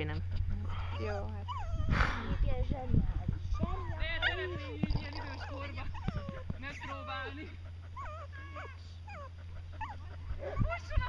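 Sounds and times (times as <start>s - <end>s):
dog whining and yipping: 0.9s - 2.0s, 3.5s - 4.8s, 5.4s - 11.0s.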